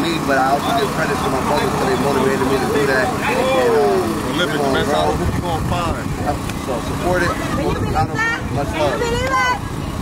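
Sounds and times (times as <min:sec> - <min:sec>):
man speaking: 0:00.0 - 0:07.4
outdoor background rumble: 0:00.0 - 0:10.0.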